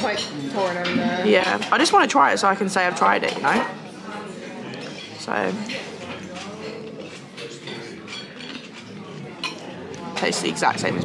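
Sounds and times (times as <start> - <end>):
cutlery and dishes clinking: 0.0 - 11.0
murmur of distant voices: 0.0 - 11.0.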